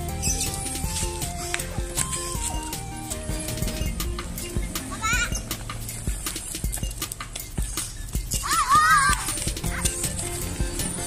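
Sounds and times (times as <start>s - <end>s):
background music: 0.0s - 11.0s
high warbling cries: 0.0s - 11.0s.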